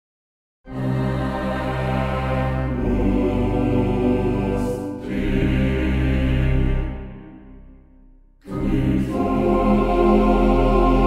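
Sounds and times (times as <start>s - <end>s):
choir chanting chords: 0.7s - 11.0s.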